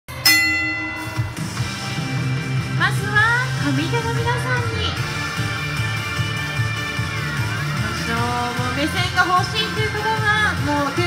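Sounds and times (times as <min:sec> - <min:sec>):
bell-like chime: 0:00.1 - 0:02.3
background music: 0:00.1 - 0:11.0.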